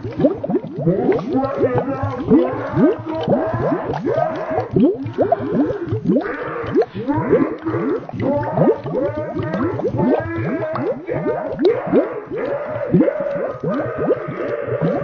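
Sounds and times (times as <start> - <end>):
slowed processed warbling voice: 0.0 - 15.0.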